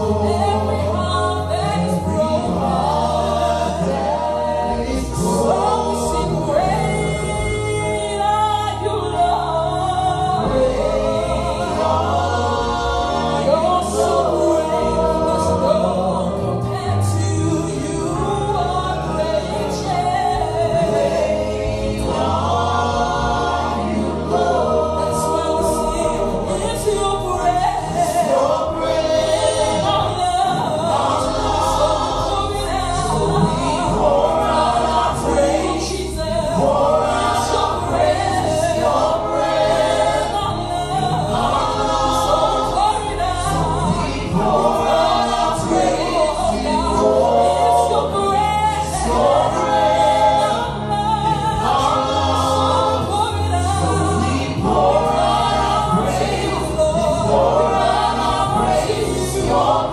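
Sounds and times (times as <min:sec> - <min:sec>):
group singing praise song: 0:00.0 - 0:59.9
lead voice singing: 0:00.0 - 0:59.9
sustained instrumental backing: 0:00.0 - 0:59.9.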